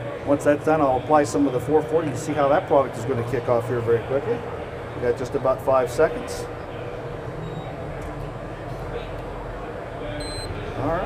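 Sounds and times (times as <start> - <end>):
busy exhibition hall noise: 0.0 - 11.0
electronic timer beep: 10.2 - 10.5.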